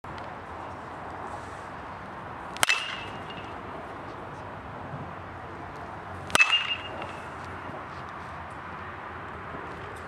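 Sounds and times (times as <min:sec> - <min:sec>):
metal bat hitting ball: 0:02.6 - 0:03.6, 0:06.2 - 0:07.5.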